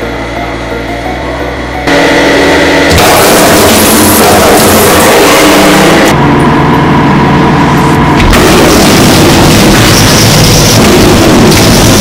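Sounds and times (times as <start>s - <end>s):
steady hum with held tones: 0.0s - 12.0s
hydraulic press running: 1.9s - 12.0s.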